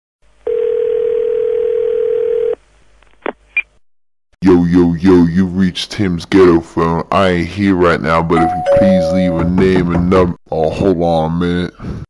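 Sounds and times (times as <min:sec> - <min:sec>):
telephone ringing tone: 0:00.4 - 0:02.6.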